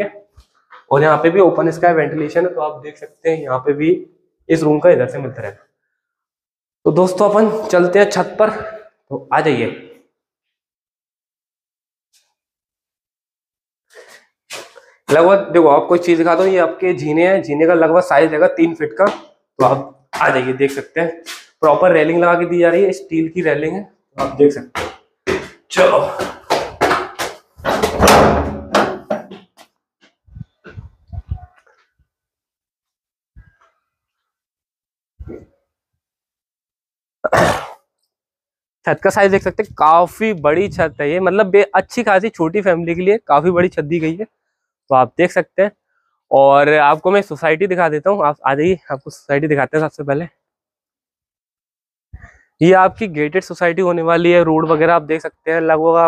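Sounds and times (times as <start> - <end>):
man speaking: 0.0 - 0.2, 0.9 - 5.6, 6.9 - 10.0, 15.1 - 24.8, 25.7 - 26.3, 38.9 - 44.3, 46.3 - 50.4, 52.6 - 56.0
man breathing faintly: 13.9 - 15.1, 52.1 - 52.6
man's stifled cough: 37.2 - 37.9.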